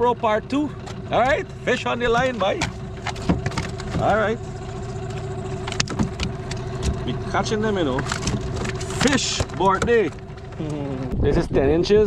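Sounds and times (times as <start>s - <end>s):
motor humming: 0.5s - 11.4s
clicks and knocks in a metal boat: 0.7s - 7.2s, 7.8s - 10.6s.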